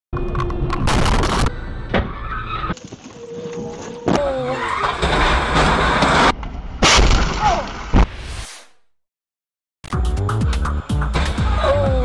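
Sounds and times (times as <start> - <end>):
tire squeal: 1.4 - 6.3
car collision: 4.7 - 7.6.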